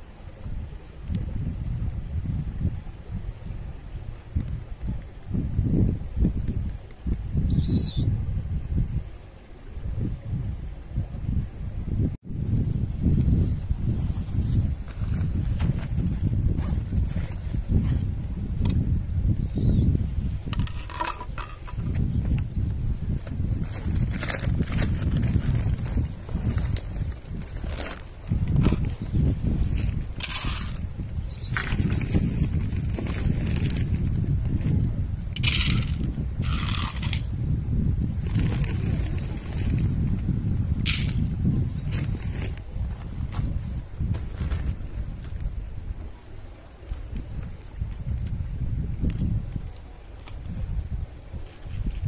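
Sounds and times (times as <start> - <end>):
wind buffeting microphone: 0.0 - 52.0
dry cat food poured onto plates: 30.2 - 30.8, 35.4 - 37.3, 40.9 - 41.2.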